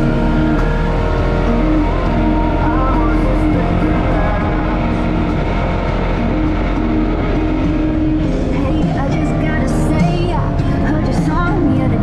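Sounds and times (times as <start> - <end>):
background music with melody: 0.0 - 12.0
off-road vehicle engine drone: 0.0 - 12.0.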